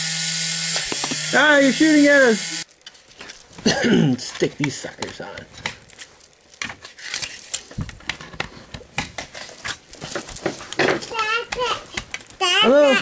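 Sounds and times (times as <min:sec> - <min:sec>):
child's voice: 0:10.9 - 0:13.0.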